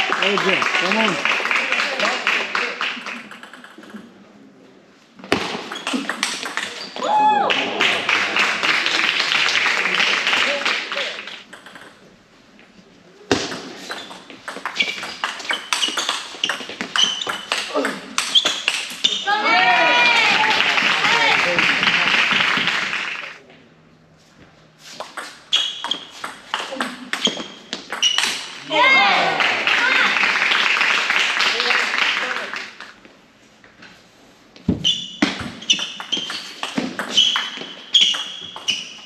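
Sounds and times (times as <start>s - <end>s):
table tennis ball clicking: 3.3s - 4.0s, 11.5s - 12.0s
voices calling out: 28.6s - 30.2s.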